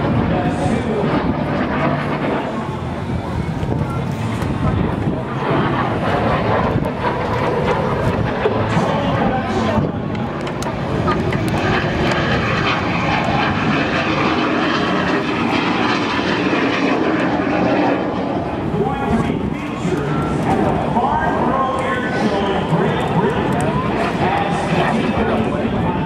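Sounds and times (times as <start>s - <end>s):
jet engine roaring overhead: 0.0s - 26.0s.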